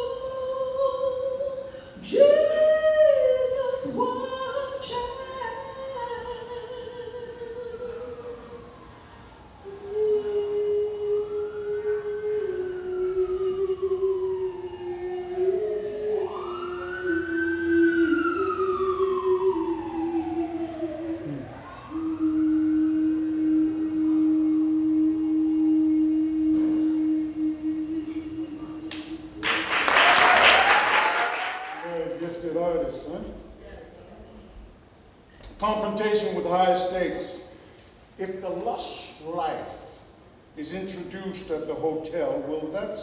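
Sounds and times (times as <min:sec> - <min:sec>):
woman singing into a microphone: 0:00.0 - 0:29.7
emergency siren wailing: 0:03.9 - 0:32.4
loud applause: 0:28.9 - 0:32.2.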